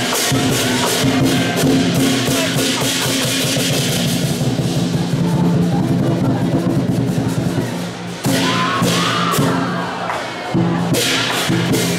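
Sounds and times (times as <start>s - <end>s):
cymbal crashes: 0.0s - 9.8s, 10.5s - 11.9s
lion dance drum: 0.0s - 11.9s.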